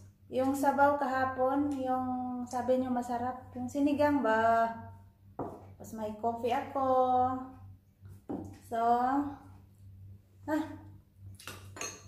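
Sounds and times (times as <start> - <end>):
low electrical hum: 0.0 - 12.0
spoon clinking ceramic bowl: 11.7 - 12.0.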